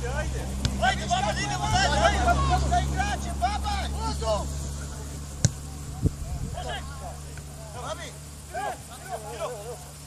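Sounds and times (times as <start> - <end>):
players calling and shouting: 0.0 - 10.0
steady low hum: 0.0 - 10.0
ball kick thump: 5.4 - 5.6.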